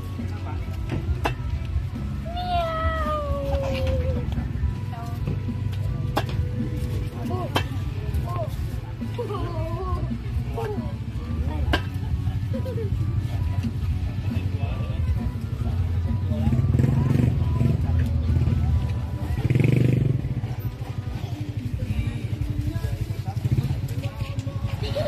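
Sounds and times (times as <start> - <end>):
music: 0.0 - 25.0.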